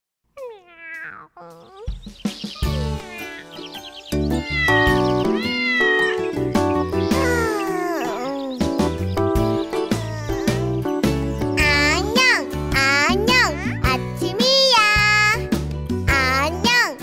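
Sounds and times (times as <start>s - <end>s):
cartoon cat meowing: 0.4s - 2.0s, 2.6s - 3.6s, 4.4s - 6.4s, 7.0s - 8.7s, 9.7s - 10.7s
children's song music: 0.4s - 17.0s.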